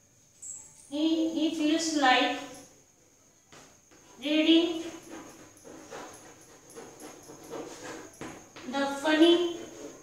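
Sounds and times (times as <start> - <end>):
chalk tapping and scraping: 3.6 - 10.0.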